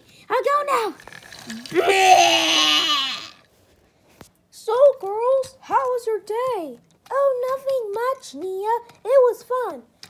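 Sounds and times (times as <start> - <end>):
child's drawn-out vocal sound: 1.5 - 3.5.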